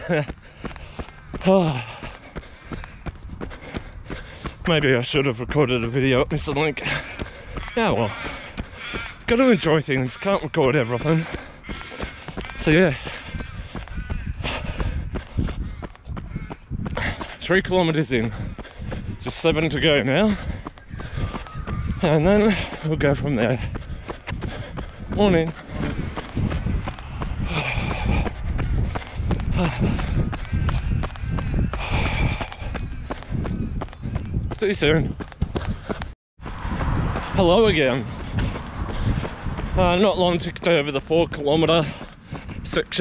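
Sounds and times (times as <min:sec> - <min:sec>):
heavy breathing: 0:00.0 - 0:04.7, 0:06.8 - 0:09.0, 0:11.0 - 0:16.0, 0:16.8 - 0:17.4, 0:18.2 - 0:19.2, 0:20.2 - 0:21.6, 0:22.6 - 0:34.4, 0:38.0 - 0:39.8, 0:41.8 - 0:42.7
running footsteps on asphalt: 0:00.0 - 0:43.0
wind rumble on microphone: 0:00.0 - 0:43.0.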